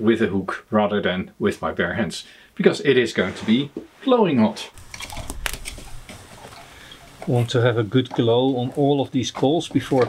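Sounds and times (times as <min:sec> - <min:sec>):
charcoal rustling: 0:04.7 - 0:10.0
poker scraping charcoal: 0:04.7 - 0:10.0.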